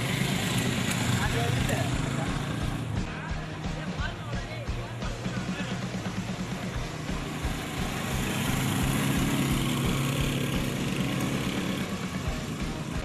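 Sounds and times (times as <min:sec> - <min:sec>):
motorcycle engines humming: 0:00.0 - 0:13.0.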